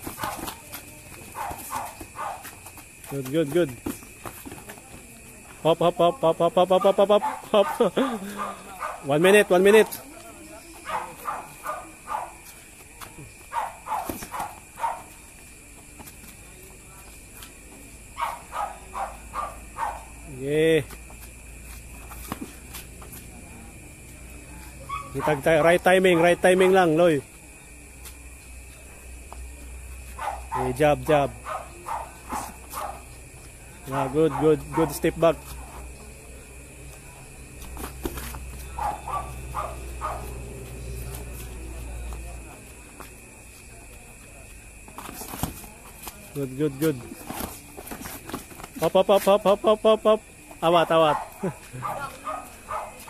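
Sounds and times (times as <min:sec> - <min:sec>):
distant murmuring voices: 0:00.0 - 0:53.0.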